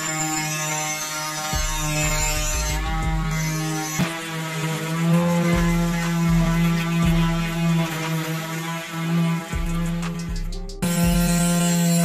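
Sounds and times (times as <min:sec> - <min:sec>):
small electric motor humming: 0:00.0 - 0:12.0.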